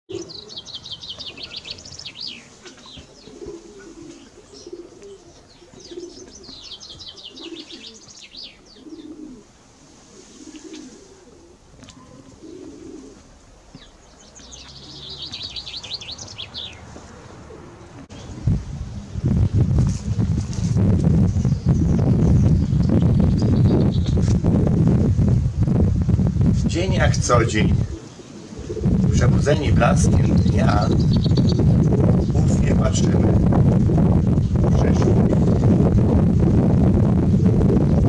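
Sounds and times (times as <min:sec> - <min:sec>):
songbird singing falling notes: 0:00.1 - 0:03.6, 0:04.2 - 0:09.2, 0:13.7 - 0:16.9, 0:21.0 - 0:24.4, 0:30.1 - 0:32.4
pigeon cooing: 0:00.1 - 0:13.4, 0:14.7 - 0:18.4, 0:27.5 - 0:32.4.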